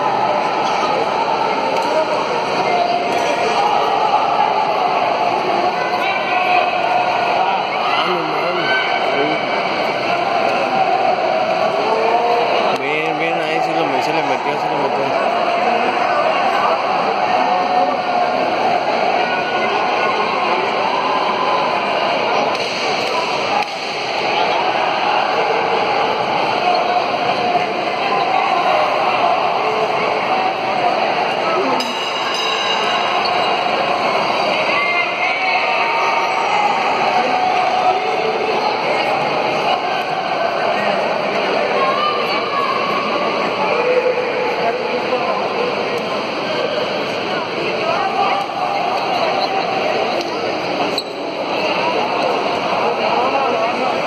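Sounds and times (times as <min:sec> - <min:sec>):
indistinct voices talking: 0:00.0 - 0:54.0.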